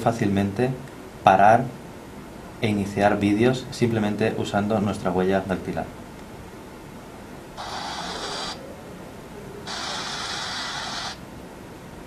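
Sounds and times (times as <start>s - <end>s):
phone loudspeaker hiss: 7.6s - 8.7s, 9.6s - 11.3s.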